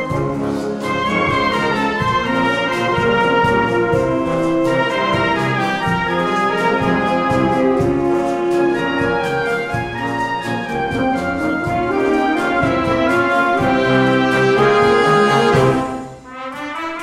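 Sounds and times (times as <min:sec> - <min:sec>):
wind band playing dance music: 0:00.0 - 0:17.0.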